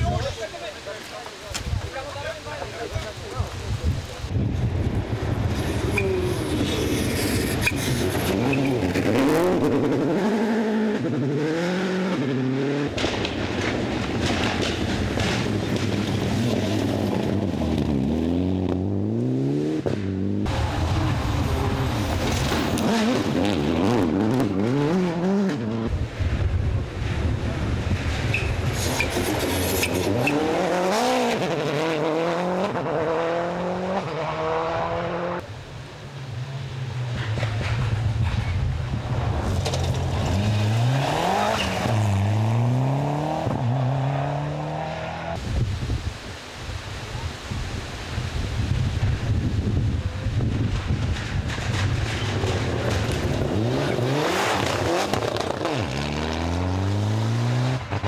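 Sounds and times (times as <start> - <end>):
rally car engines revving: 4.7 - 35.5, 36.3 - 45.4, 50.0 - 58.0.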